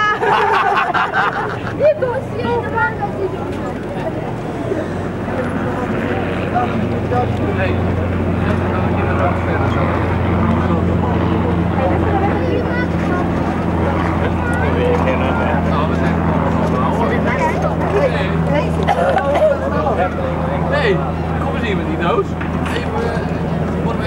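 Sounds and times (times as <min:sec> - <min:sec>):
people talking: 0:00.0 - 0:24.0
steady low hum: 0:00.0 - 0:24.0.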